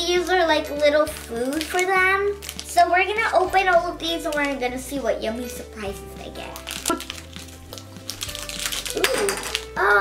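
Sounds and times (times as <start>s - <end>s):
light background music: 0.0s - 10.0s
plastic packets crinkling: 0.7s - 4.6s, 6.2s - 9.8s.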